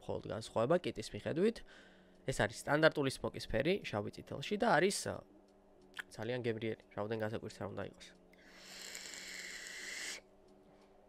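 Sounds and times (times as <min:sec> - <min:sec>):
hiss of air through vape tank: 0:08.5 - 0:10.2.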